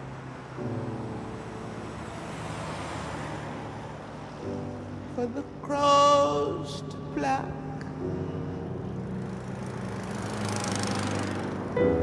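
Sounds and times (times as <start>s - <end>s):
bus driving past: 0.0s - 7.2s, 7.8s - 12.0s.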